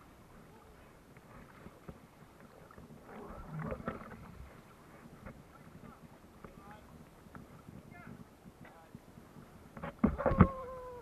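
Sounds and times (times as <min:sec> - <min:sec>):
water splashing from swimming: 0:00.0 - 0:07.8.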